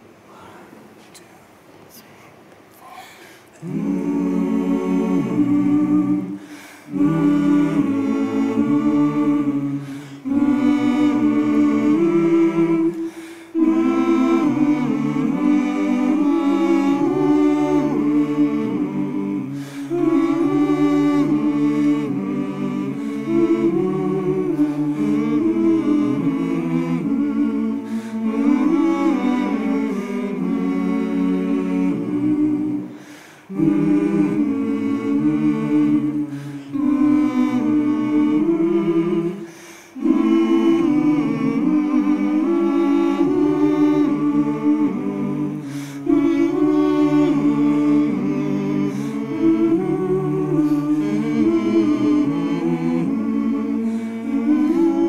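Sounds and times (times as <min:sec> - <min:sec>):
choir humming chords: 0:03.6 - 0:55.0.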